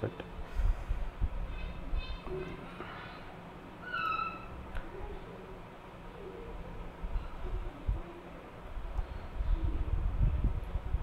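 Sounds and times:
low room noise: 0.0 - 11.0
faint animal calls: 1.4 - 5.2.

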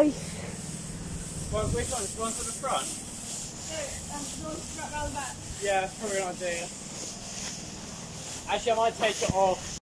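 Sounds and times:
indistinct voices talking: 0.0 - 9.6
blower fan hiss and whir: 0.0 - 9.8.

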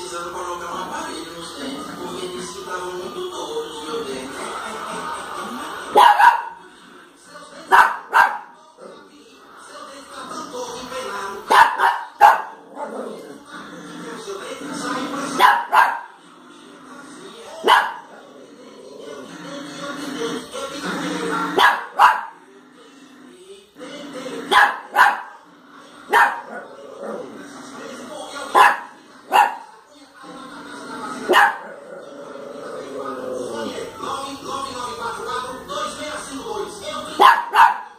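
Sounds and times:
small dog barking: 6.0 - 6.6, 7.7 - 8.5, 11.5 - 12.6, 15.4 - 16.1, 17.6 - 18.1, 21.6 - 22.3, 24.5 - 25.4, 26.1 - 26.5, 28.5 - 29.7, 31.3 - 31.7, 37.2 - 37.9.

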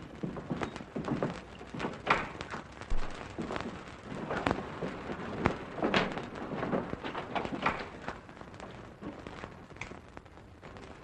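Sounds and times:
film soundtrack hiss: 0.0 - 11.0
footsteps on hard floor: 0.2 - 5.5.

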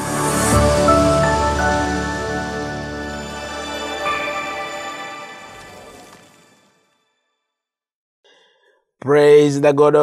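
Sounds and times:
theme music: 0.0 - 7.1
faint breath: 8.3 - 8.9.

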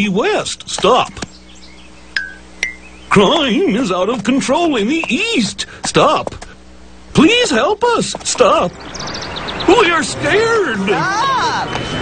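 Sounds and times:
faint low hum: 0.0 - 12.0
high clinking tones: 2.2 - 3.4.

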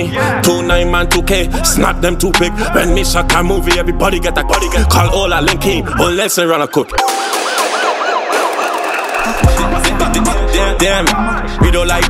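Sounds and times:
wailing siren effect: 4.0 - 10.2.

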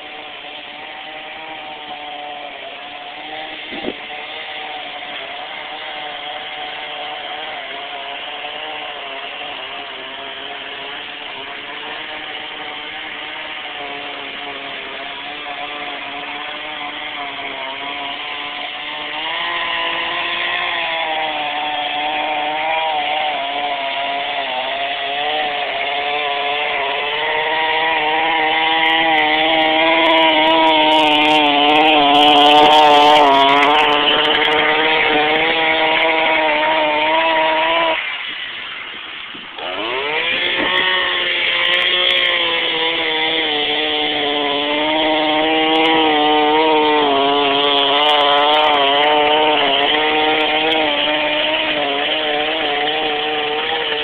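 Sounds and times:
motor running steadily: 0.0 - 54.0.

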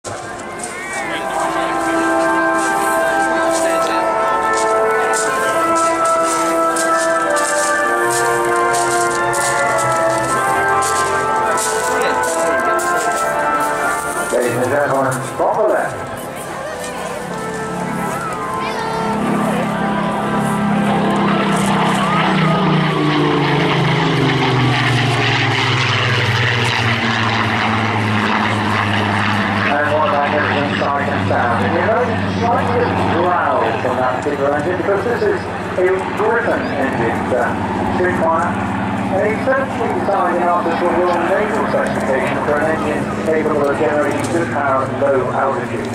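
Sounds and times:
propeller plane engine passing: 0.1 - 45.9.

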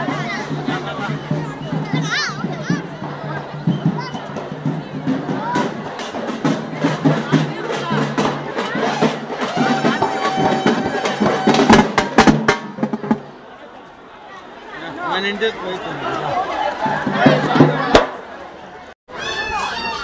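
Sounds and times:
procession drums beating: 0.0 - 13.4
crowd of voices: 0.0 - 20.0.

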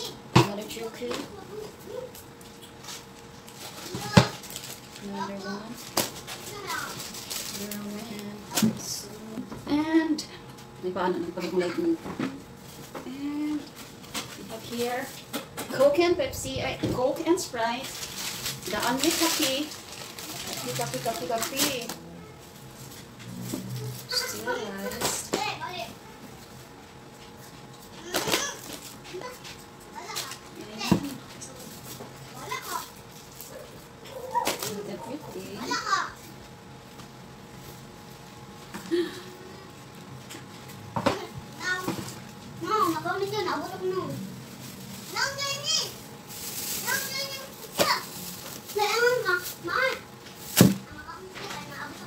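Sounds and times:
child talking: 0.0 - 2.2, 3.8 - 4.4, 6.5 - 7.0, 18.8 - 22.4, 24.0 - 26.0, 28.0 - 31.2, 32.3 - 36.2, 41.6 - 44.3, 45.1 - 46.0, 46.8 - 50.1, 50.8 - 52.0
packets and cans rustling: 2.5 - 8.9, 16.6 - 25.8, 26.4 - 36.2, 40.1 - 52.0.

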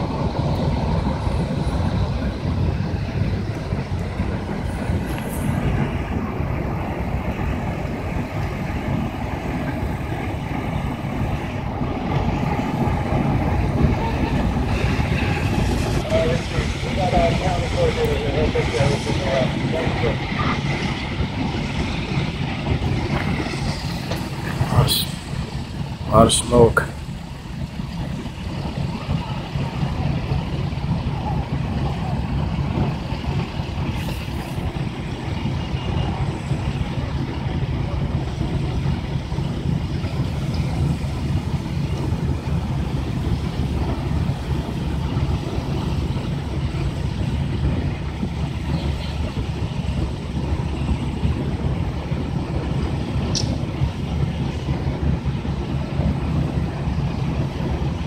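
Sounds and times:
diesel engines droning: 0.0 - 58.0.

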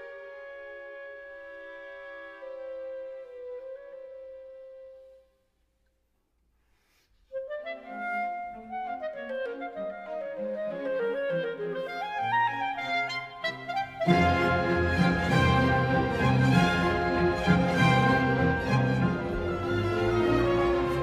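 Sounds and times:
clarinet playing: 7.3 - 21.0
orchestra playing loudly: 12.8 - 21.0.

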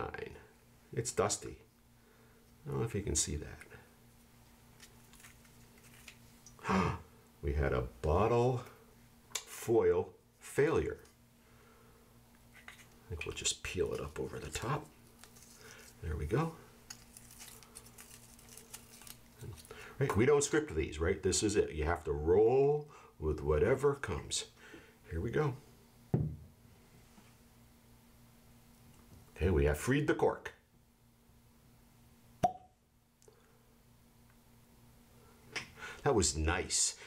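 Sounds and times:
steady low hum: 0.0 - 37.0
foil capsule crinkling: 4.8 - 6.5, 12.6 - 19.8
cork popping from bottle: 32.4 - 32.7.

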